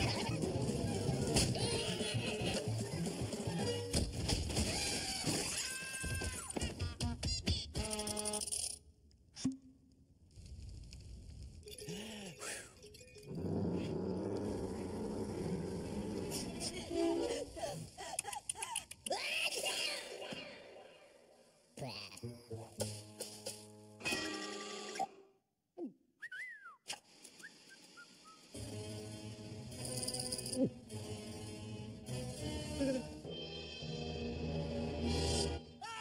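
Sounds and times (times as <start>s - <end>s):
cartoon background music: 0.0s - 5.6s, 21.8s - 25.3s, 28.5s - 36.0s
cartoon cat growling: 13.3s - 17.6s.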